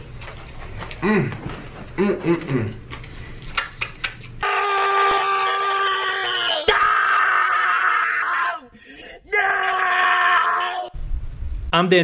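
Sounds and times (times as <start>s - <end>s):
man screaming: 4.4s - 11.0s.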